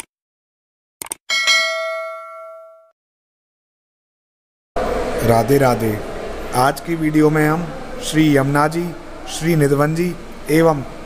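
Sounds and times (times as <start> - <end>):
bright bell ding: 1.3 - 2.9.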